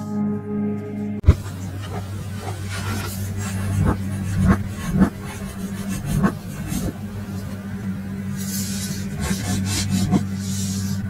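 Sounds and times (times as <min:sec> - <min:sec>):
sustained low note: 0:00.0 - 0:03.9.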